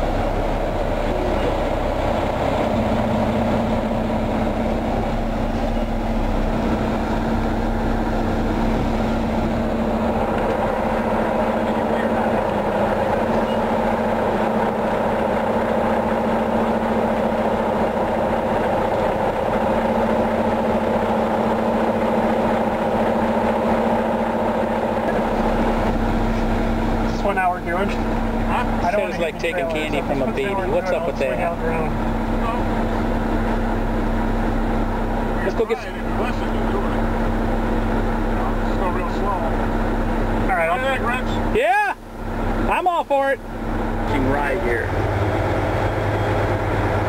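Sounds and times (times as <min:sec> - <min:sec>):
diesel truck engine running: 0:00.0 - 0:47.0
road noise: 0:00.0 - 0:47.0.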